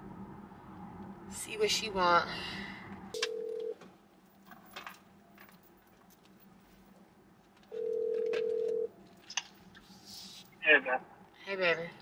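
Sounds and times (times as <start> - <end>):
phone ringback tone: 3.2 - 3.8, 7.7 - 8.9.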